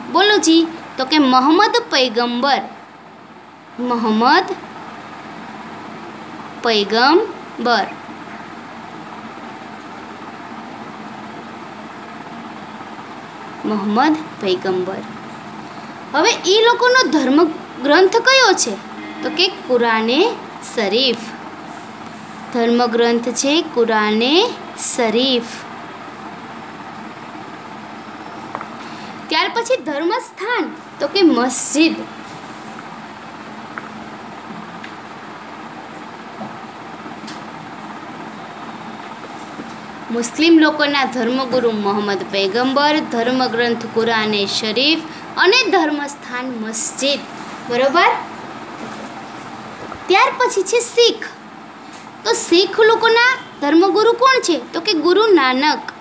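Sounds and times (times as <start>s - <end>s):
room noise hiss: 0.0s - 56.0s
steady fan-like noise: 0.0s - 56.0s.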